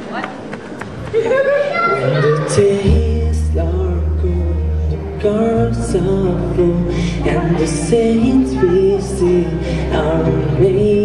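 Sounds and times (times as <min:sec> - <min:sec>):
person singing: 0:02.0 - 0:11.0
bass guitar: 0:02.5 - 0:11.0.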